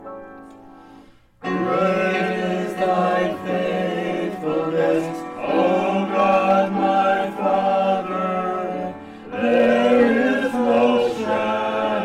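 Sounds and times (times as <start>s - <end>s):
piano accompaniment: 0.0s - 12.0s
group of voices singing a hymn: 1.4s - 12.0s.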